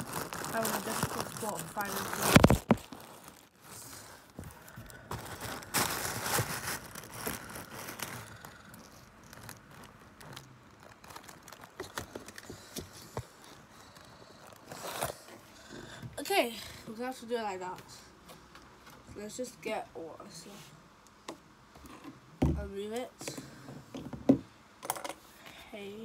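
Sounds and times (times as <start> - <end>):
paper rustling and crinkling: 0.0 - 13.7.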